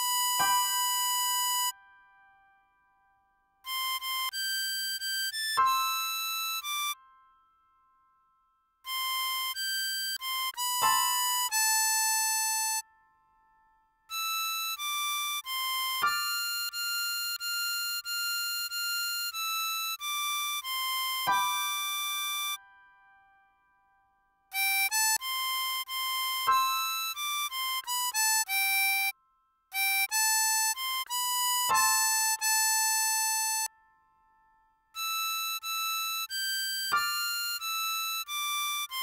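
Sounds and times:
harmonica note: 0.0s - 1.8s, 3.6s - 7.3s, 8.9s - 13.1s, 14.1s - 22.7s, 24.5s - 34.2s, 35.0s - 39.0s.

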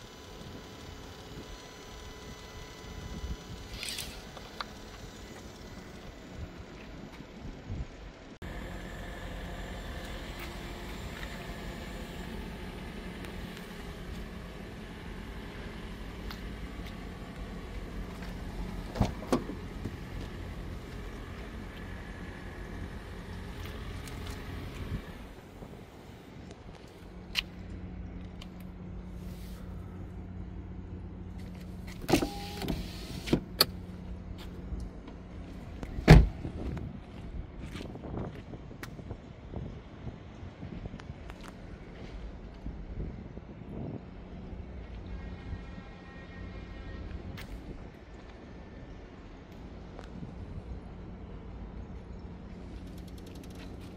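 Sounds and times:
parked car humming: 0.0s - 53.9s.

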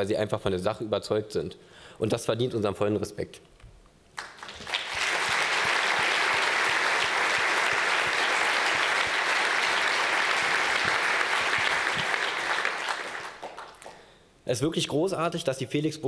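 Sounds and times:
audience applauding: 4.2s - 14.0s.

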